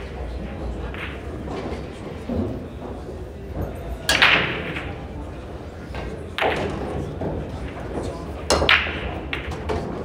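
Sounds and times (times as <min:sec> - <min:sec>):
hum and murmur of hall: 0:00.0 - 0:10.0
pool balls clacking: 0:00.0 - 0:10.0.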